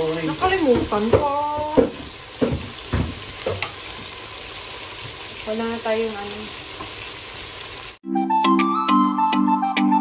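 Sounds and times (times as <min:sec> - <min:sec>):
chicken sizzling in a pot: 0:00.0 - 0:08.0.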